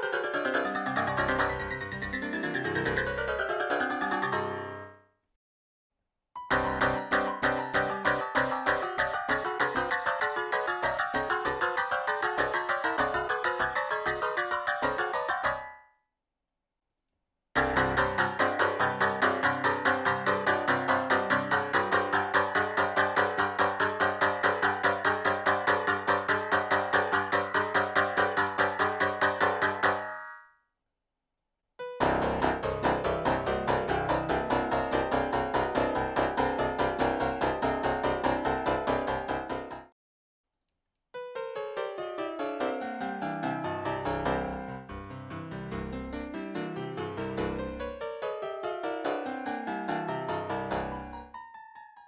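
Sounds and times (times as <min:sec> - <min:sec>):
dense cluster of keyboard notes: 0:00.0 - 0:05.0, 0:06.4 - 0:15.7, 0:17.6 - 0:30.2, 0:31.8 - 0:39.9, 0:41.2 - 0:51.3
piano chords: 0:00.0 - 0:05.0, 0:06.4 - 0:15.8, 0:17.6 - 0:30.4, 0:31.8 - 0:39.9, 0:41.2 - 0:51.8.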